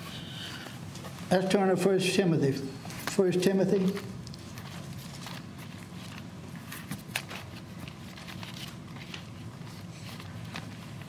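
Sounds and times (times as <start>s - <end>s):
low room hum: 0.0s - 11.0s
thin pages rustling: 2.8s - 11.0s.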